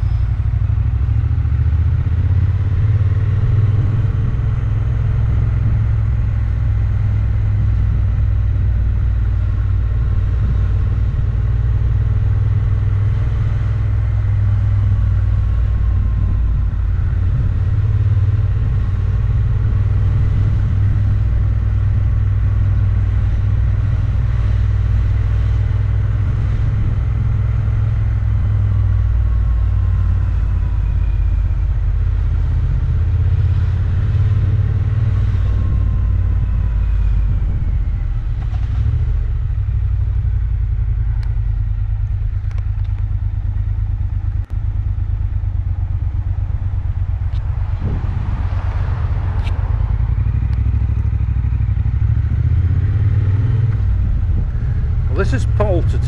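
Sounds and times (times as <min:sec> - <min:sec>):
motorcycle engine rumble: 0:00.0 - 0:56.0.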